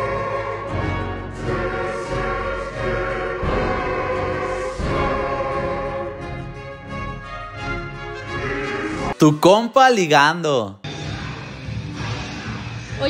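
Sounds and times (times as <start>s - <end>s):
choir singing sustained notes: 0.0s - 6.4s.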